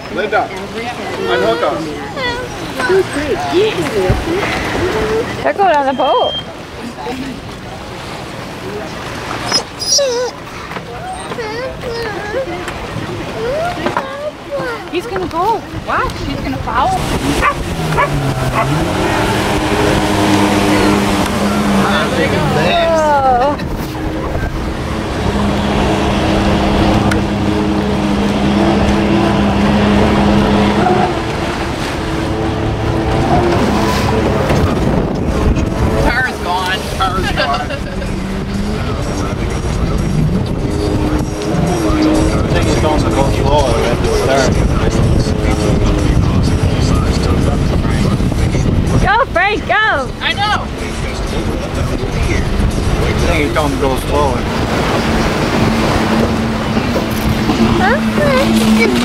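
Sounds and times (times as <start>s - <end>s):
boat engine drone: 0.0s - 59.0s
water noise: 0.0s - 59.0s
wind: 0.0s - 59.0s
indistinct voices: 8.8s - 59.0s.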